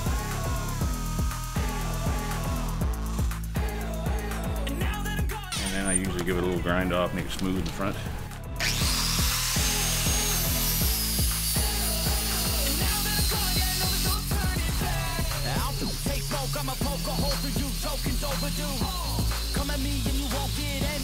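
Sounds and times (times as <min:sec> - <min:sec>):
angle grinder whining on wood: 0:00.0 - 0:03.5, 0:08.6 - 0:21.0
background music: 0:00.0 - 0:21.0.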